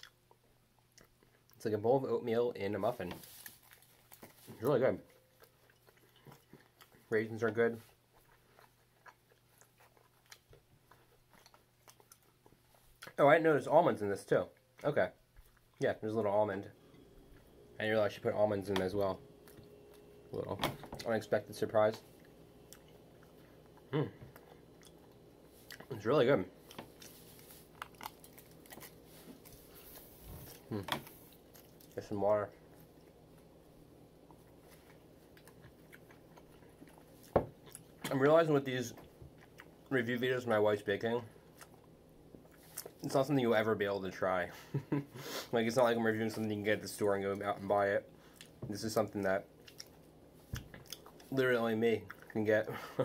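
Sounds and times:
faint chewing: 0:00.0 - 0:01.6, 0:02.8 - 0:13.2, 0:14.4 - 0:16.0, 0:16.7 - 0:43.2, 0:44.7 - 0:53.0
steady low hum: 0:00.0 - 0:53.0
person humming: 0:23.9 - 0:24.4, 0:30.6 - 0:31.0.

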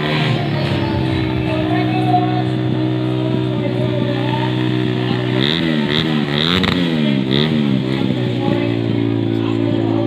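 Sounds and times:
motorcycle engine revving: 0:00.0 - 0:10.0.

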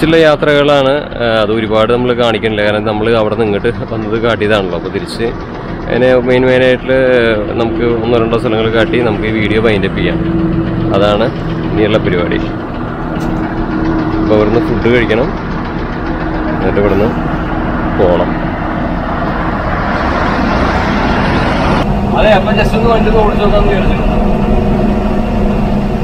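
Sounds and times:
voices nearby: 0:00.0 - 0:25.0
bus diesel engine idling: 0:00.0 - 0:26.0
broad rushing noise: 0:02.0 - 0:26.0.

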